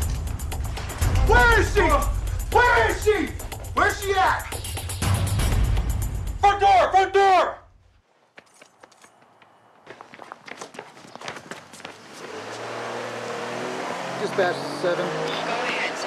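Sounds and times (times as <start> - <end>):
footsteps: 2.4 - 4.9, 7.8 - 12.7
loud shout: 6.4 - 7.6.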